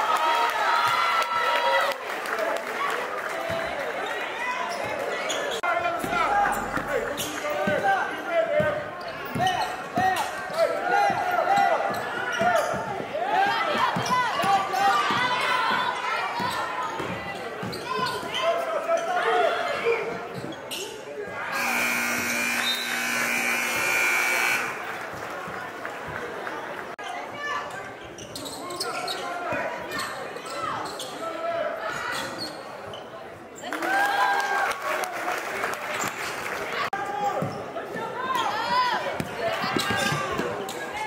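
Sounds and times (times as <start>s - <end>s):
players and spectators voices: 0.0s - 41.0s
scoreboard horn blast: 21.5s - 24.9s.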